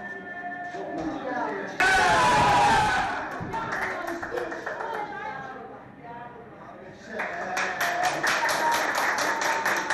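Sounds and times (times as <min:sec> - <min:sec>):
people shouting and cheering: 0:01.8 - 0:03.6.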